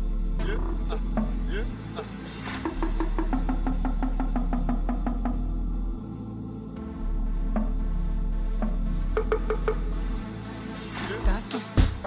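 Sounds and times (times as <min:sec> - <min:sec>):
deep bass: 0:00.0 - 0:02.1, 0:06.8 - 0:12.0
percussive hits: 0:11.2 - 0:12.0.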